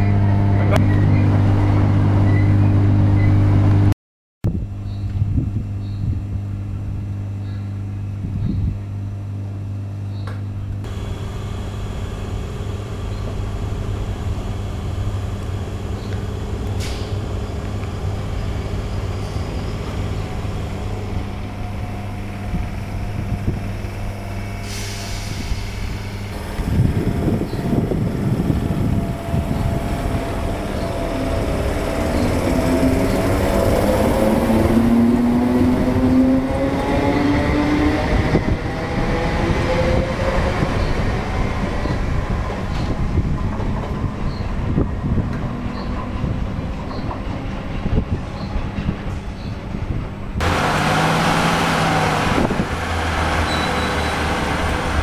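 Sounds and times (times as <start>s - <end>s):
electric train motor whine: 10.8s - 37.2s
train passing: 10.9s - 55.0s.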